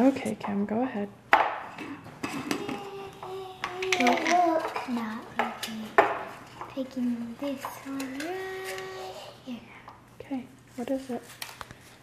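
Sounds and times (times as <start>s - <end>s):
child humming faintly: 2.3s - 4.6s, 7.8s - 9.8s.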